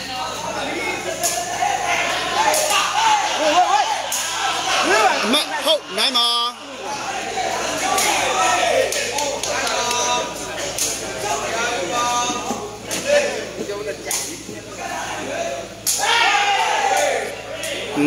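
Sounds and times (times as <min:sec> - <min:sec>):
crowd: 0:00.0 - 0:18.0
men talking and calling out: 0:00.0 - 0:18.0.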